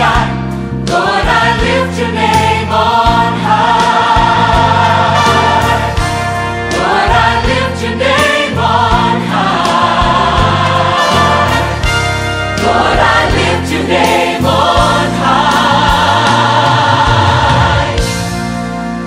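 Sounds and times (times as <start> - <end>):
choir singing: 0.0 - 18.3
regular percussive beat: 0.0 - 19.0
sustained bass: 0.0 - 19.0.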